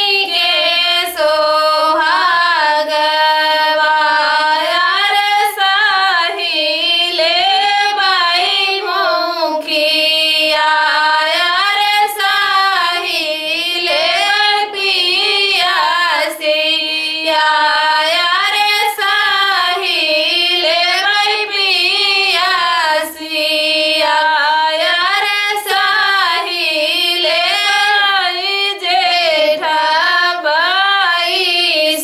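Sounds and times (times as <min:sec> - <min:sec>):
two women singing unaccompanied: 0:00.0 - 0:32.0.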